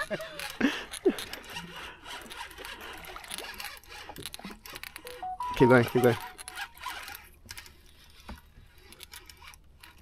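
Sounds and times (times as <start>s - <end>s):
fishing reel clicking and scraping: 0.2s - 5.0s, 6.4s - 10.0s.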